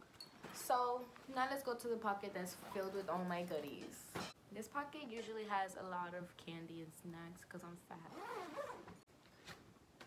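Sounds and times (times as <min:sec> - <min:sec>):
zipper being pulled open: 0:08.0 - 0:09.0.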